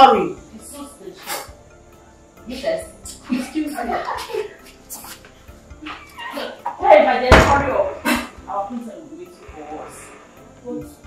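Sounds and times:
background music: 0.0 - 11.0
woman crying out and laughing: 5.8 - 6.7.

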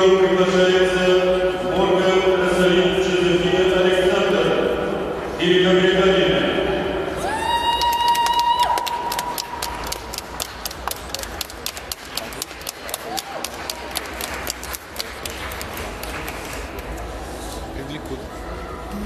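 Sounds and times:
crowd clapping: 7.7 - 17.1.

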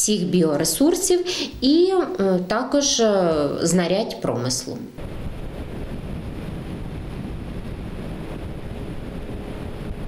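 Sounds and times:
motorboat motor running: 5.0 - 10.0
wind buffeting microphone: 5.0 - 10.0.

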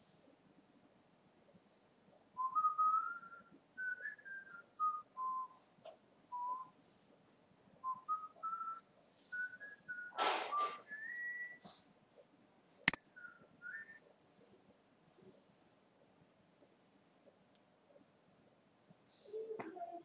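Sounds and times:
person whistling a tune: 2.4 - 5.6, 6.3 - 6.7, 7.8 - 11.7
short burst of noise: 10.1 - 11.0.

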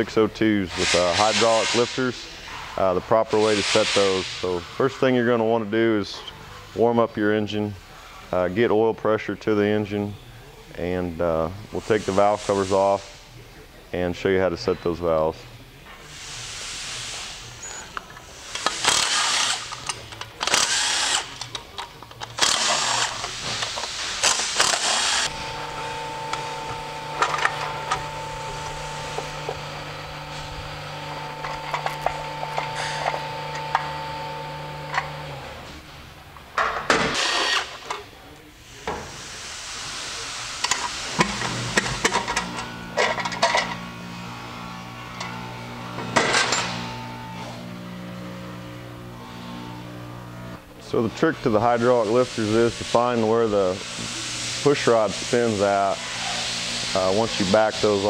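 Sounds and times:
cordless drill running in bursts: 18.7 - 19.8, 20.4 - 21.3, 22.4 - 23.3, 24.2 - 35.3.

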